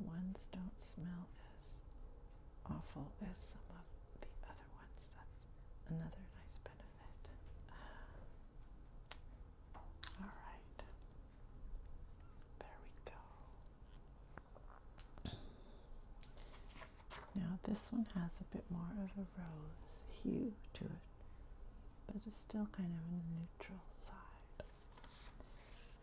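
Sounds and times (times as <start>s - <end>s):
soft whispering: 0.0s - 1.9s, 2.6s - 8.3s, 10.0s - 11.1s, 12.4s - 14.0s, 17.4s - 21.3s, 22.0s - 26.0s.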